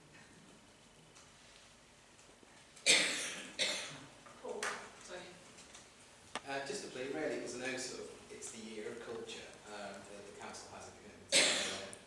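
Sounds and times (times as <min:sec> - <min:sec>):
person coughing: 0:02.9 - 0:04.0, 0:11.3 - 0:11.9.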